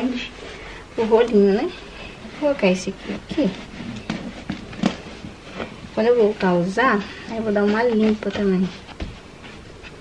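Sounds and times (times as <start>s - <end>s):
clothes rustling: 0.0s - 10.0s.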